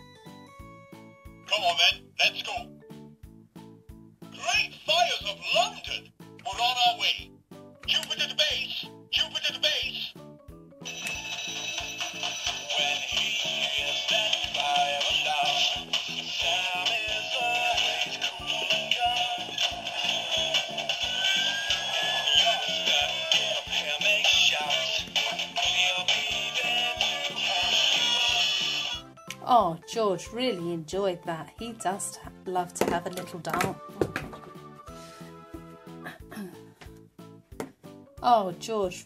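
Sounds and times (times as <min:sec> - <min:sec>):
tinny electronic toy music: 0:10.8 - 0:29.0.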